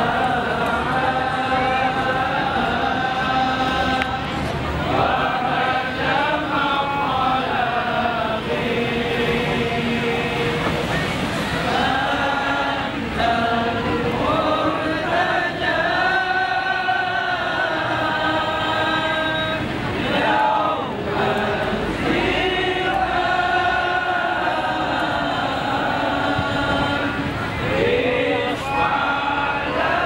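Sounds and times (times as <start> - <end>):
group chanting devotional song: 0.0 - 30.0.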